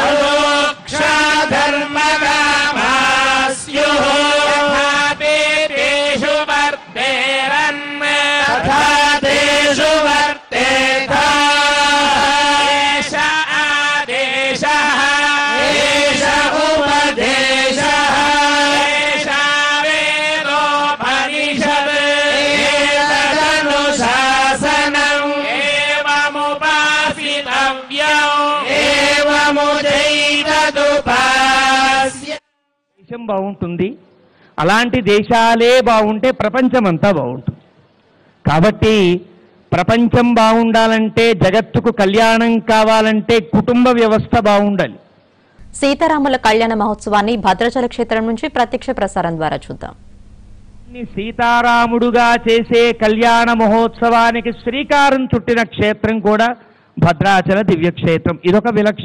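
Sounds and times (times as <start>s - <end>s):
man chanting into a microphone: 0.0s - 30.0s, 38.4s - 45.0s, 50.9s - 59.0s.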